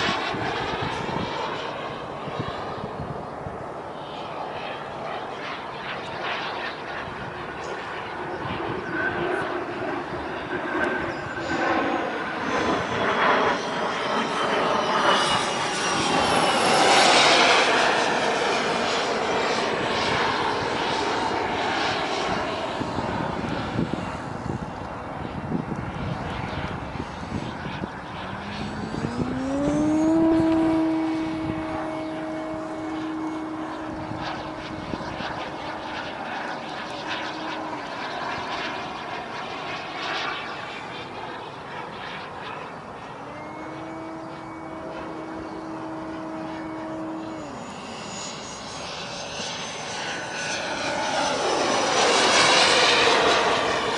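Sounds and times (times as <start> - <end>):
jet aircraft flying overhead: 0.0 - 53.9
pitched hum: 0.0 - 53.9.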